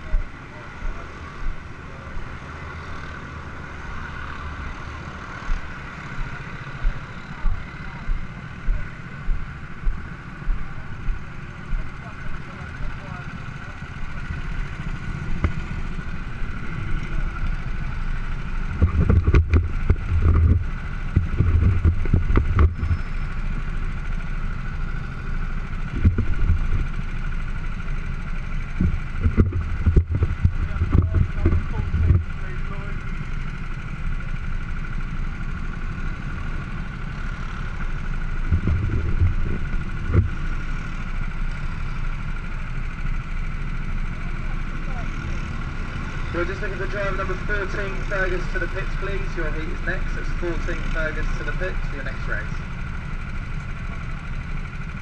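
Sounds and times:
go-kart engines idling: 0:00.0 - 0:55.0
heavy low rumbling: 0:03.8 - 0:34.4, 0:37.6 - 0:42.2.

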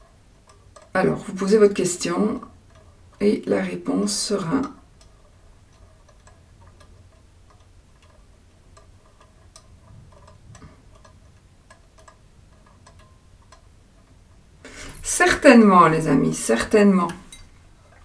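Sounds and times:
light ticks: 0:00.0 - 0:01.0, 0:01.7 - 0:03.2, 0:04.1 - 0:14.5.

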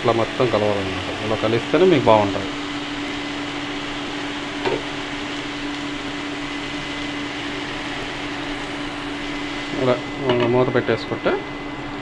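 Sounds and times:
food sizzling in a pan: 0:00.0 - 0:11.1
constant hum: 0:00.0 - 0:12.0.

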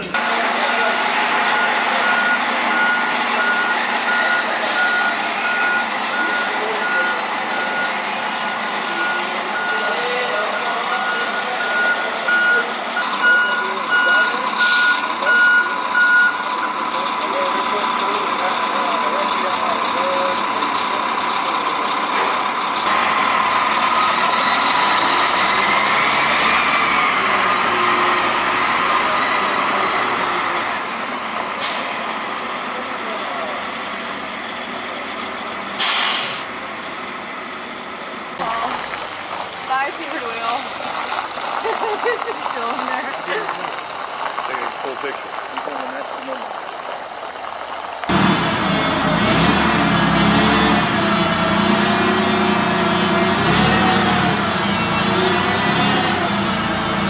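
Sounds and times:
truck diesel engine running: 0:00.0 - 0:57.0
reversing alarm beeping: 0:00.8 - 0:22.2.

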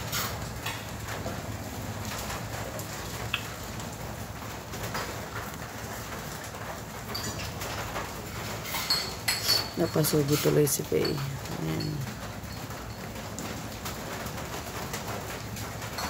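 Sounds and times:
plates and cutlery clinking: 0:07.1 - 0:13.1.

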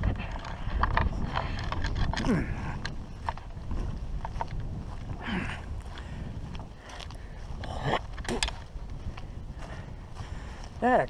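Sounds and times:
footsteps on grass: 0:00.0 - 0:11.0
wind rumble on microphone: 0:00.0 - 0:11.0.

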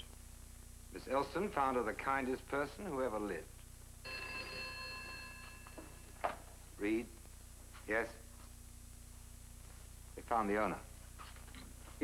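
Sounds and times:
telephone bell ringing: 0:04.1 - 0:06.2.

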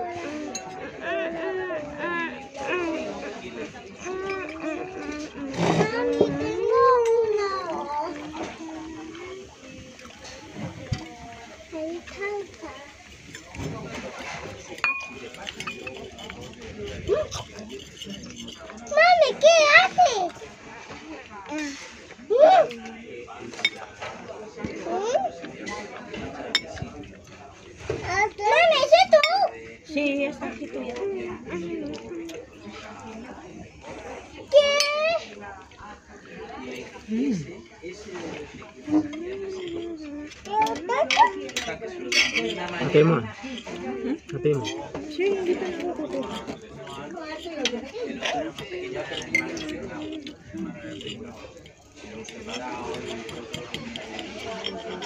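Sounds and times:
murmuring voices: 0:00.0 - 0:55.0
cutlery and dishes clinking: 0:00.3 - 0:01.0, 0:02.7 - 0:29.5, 0:30.5 - 0:35.8, 0:37.6 - 0:55.0
tableware clinking: 0:12.7 - 0:19.4, 0:38.9 - 0:55.0.

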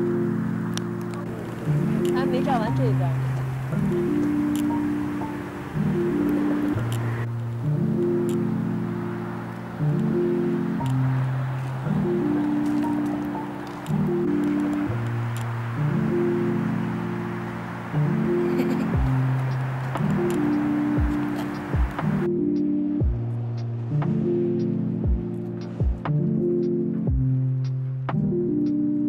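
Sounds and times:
soft sustained chords: 0:00.0 - 0:29.0.

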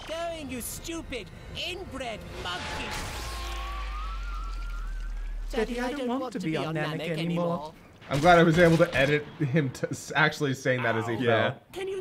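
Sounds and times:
thin whine rising in pitch: 0:03.3 - 0:05.8.

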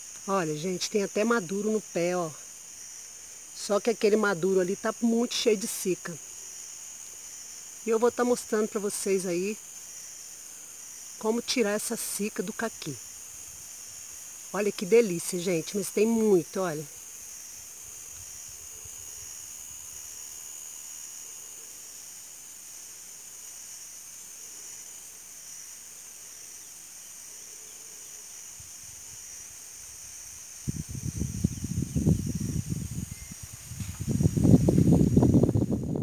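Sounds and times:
insects chirring: 0:00.0 - 0:36.0
outdoor hiss: 0:00.0 - 0:36.0
low rumbling microphone noise: 0:30.6 - 0:36.0.

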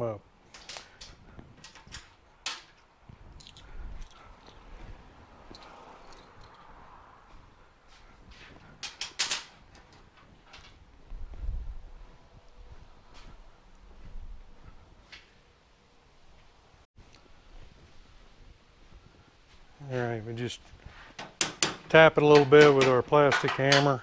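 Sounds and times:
tools and parts clicking: 0:00.5 - 0:04.7, 0:05.5 - 0:06.7, 0:08.8 - 0:10.8, 0:21.2 - 0:24.0.

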